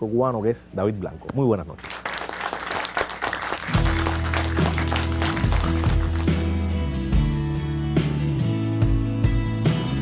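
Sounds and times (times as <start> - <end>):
applause: 1.8 - 6.6
band playing: 3.6 - 7.7.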